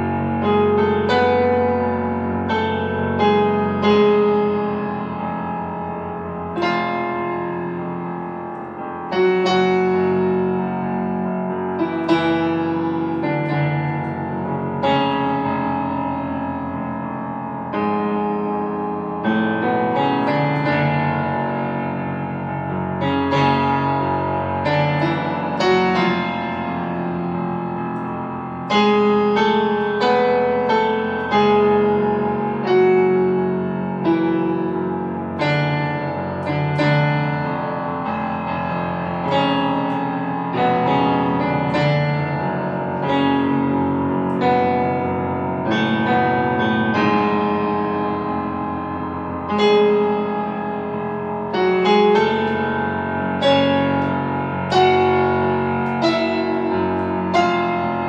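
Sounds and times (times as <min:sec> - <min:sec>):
slow solo piano: 0:00.0 - 0:58.0.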